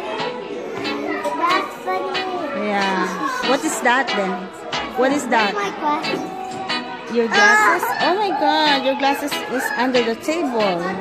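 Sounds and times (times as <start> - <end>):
children's voices chattering: 0.0 - 11.0
child talking excitedly: 7.3 - 8.1.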